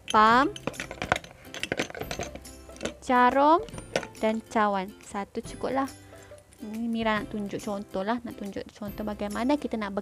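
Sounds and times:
plastic tools clicking and clinking: 0.0 - 4.4.

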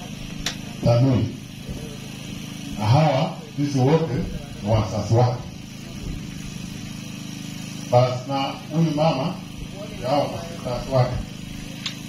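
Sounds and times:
small engine idling: 0.0 - 12.0.

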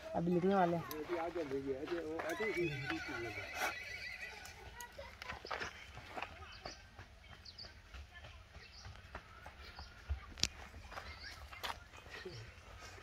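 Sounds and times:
horse whinnying: 2.3 - 4.6.

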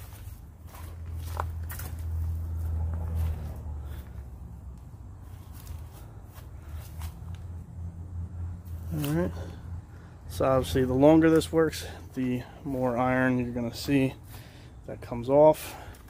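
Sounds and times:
scuffs and clicks: 0.0 - 7.6, 8.6 - 9.5
footsteps walking slowly: 0.0 - 8.0
steady low hum: 0.0 - 16.0.

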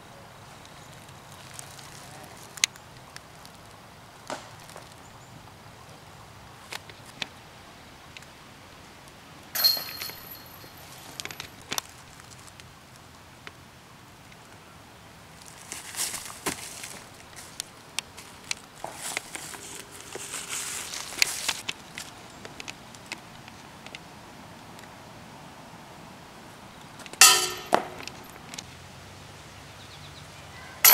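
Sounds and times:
footsteps in dry leaves: 0.5 - 2.6, 15.3 - 22.6
disc striking metal basket: 9.6 - 11.4, 27.2 - 28.5.

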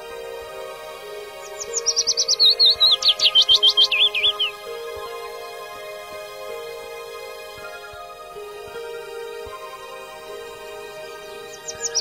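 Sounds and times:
soft background music: 0.0 - 12.0
songbird chirping: 0.0 - 12.0.

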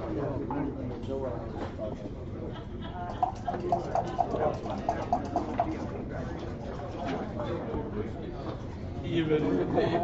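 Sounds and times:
checkers clicking on a board: 3.2 - 5.8.

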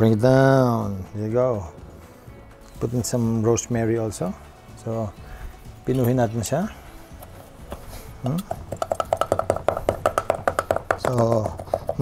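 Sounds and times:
knife chopping on wooden board: 8.3 - 12.0.

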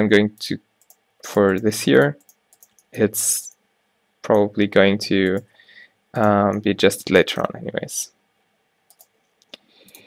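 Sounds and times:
keyboard and mouse clicks: 0.8 - 3.0, 8.9 - 10.0.

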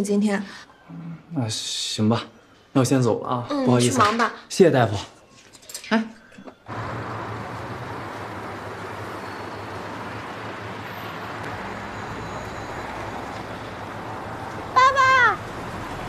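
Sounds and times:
low engine hum: 6.7 - 14.7
passing cars hissing: 6.7 - 16.0.

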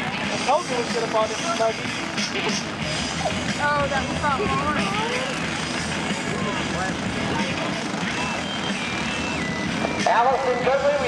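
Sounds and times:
faint voices: 0.0 - 11.0
go-kart engines droning: 0.0 - 11.0
high engine whine: 0.0 - 11.0.

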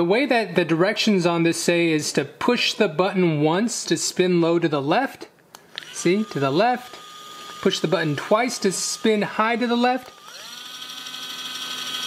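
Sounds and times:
massager motor whine: 5.8 - 12.0.

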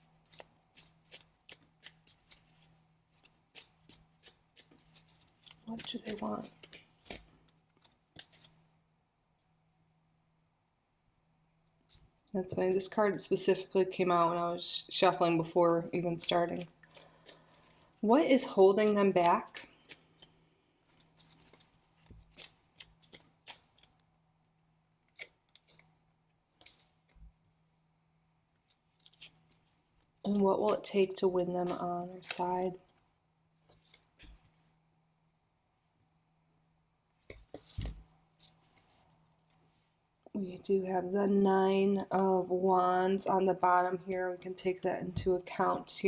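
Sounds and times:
cards being shuffled: 0.0 - 8.6, 15.9 - 24.0, 25.0 - 26.0, 28.6 - 32.9, 37.3 - 39.7
cards clicking: 0.3 - 8.6, 21.0 - 24.0, 31.6 - 32.5.

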